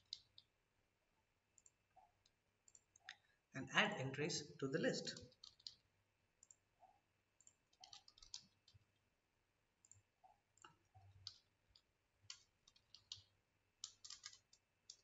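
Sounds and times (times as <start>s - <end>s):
keyboard and mouse clicking: 0.0s - 0.5s, 1.6s - 3.2s, 5.0s - 9.0s, 9.8s - 15.0s.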